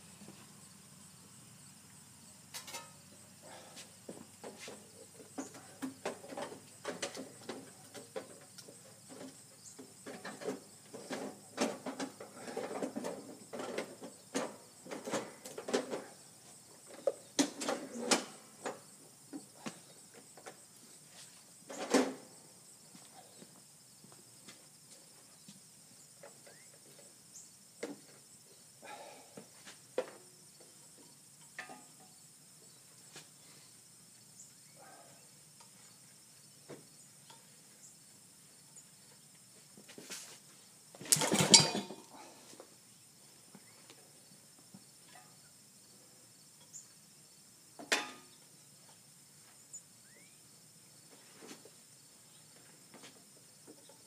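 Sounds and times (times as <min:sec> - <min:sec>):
high insect trill: 0:00.0 - 0:54.0.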